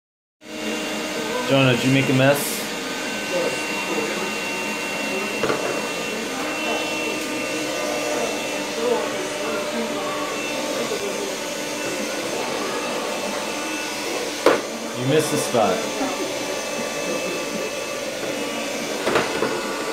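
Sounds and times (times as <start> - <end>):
handheld vacuum cleaner running: 0.4 - 19.9.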